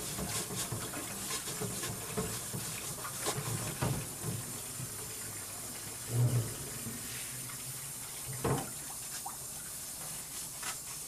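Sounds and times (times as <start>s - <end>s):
tap running into sink: 0.0s - 7.6s, 8.2s - 9.3s.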